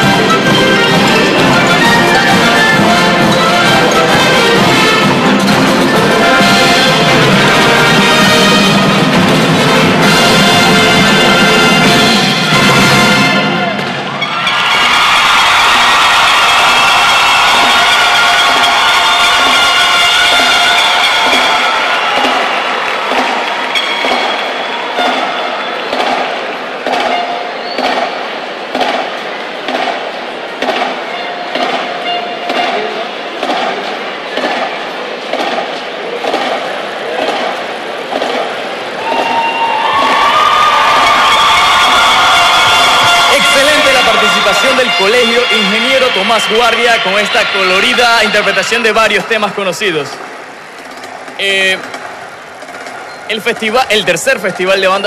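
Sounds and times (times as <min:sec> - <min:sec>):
steady drum beat: 0:00.0 - 0:13.9, 0:16.6 - 0:46.5
marching band playing: 0:00.0 - 0:54.7
crowd cheering: 0:00.0 - 0:55.0.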